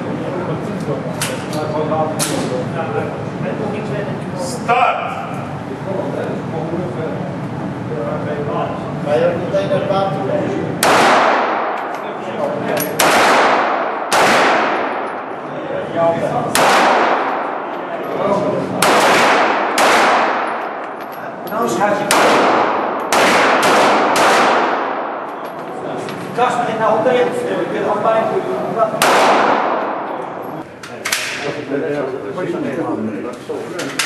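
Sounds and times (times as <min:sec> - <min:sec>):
pistol shots echoing indoors: 0:10.8 - 0:12.2, 0:12.8 - 0:15.5, 0:16.4 - 0:21.2, 0:21.8 - 0:25.8, 0:29.0 - 0:31.4.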